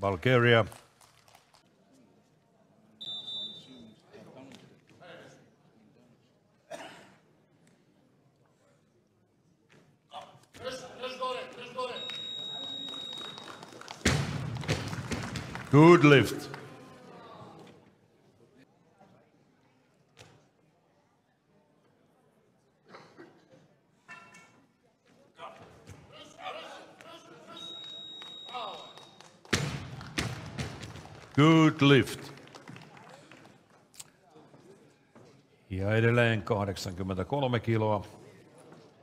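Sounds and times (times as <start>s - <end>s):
high beep: 11.9s - 13.4s, 27.6s - 29.0s.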